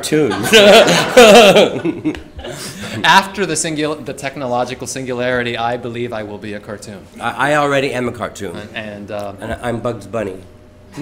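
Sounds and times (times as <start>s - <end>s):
man chuckling: 0.3s - 3.0s.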